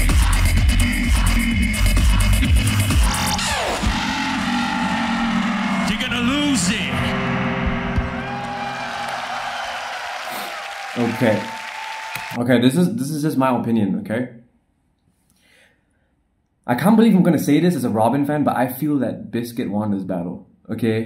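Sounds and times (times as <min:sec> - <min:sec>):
heavy looped bass beat: 0:00.0 - 0:08.4
held layered vocal tones: 0:00.0 - 0:09.5
falling pitch sweep: 0:03.4 - 0:11.1.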